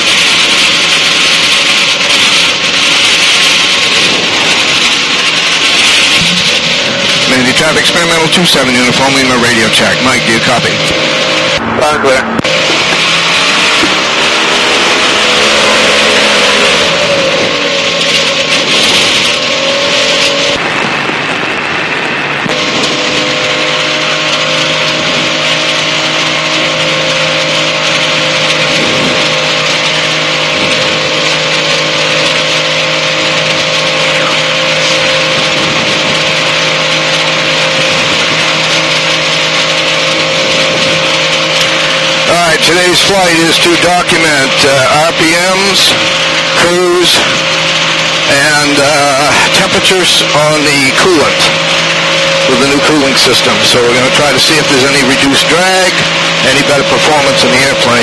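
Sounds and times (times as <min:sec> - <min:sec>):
aircraft engine running: 0:00.0 - 0:58.0.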